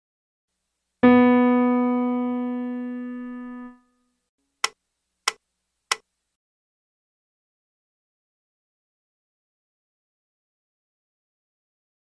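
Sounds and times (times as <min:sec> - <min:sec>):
piano note ringing: 0:01.0 - 0:04.0.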